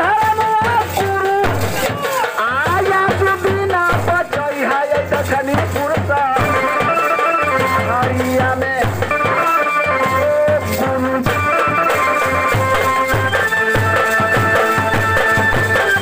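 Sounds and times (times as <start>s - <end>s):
hand drum beat: 0.0s - 16.0s
wavering melody: 6.4s - 16.0s.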